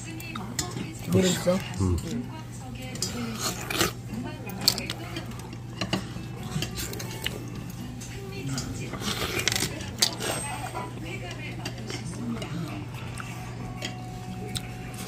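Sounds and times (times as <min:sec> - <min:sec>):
faint background chatter: 0:00.0 - 0:15.0
chopsticks clinking on metal bowls: 0:00.1 - 0:15.0.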